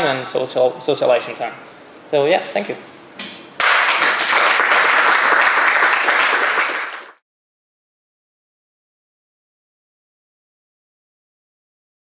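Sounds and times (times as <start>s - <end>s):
audience applauding: 3.6s - 7.2s.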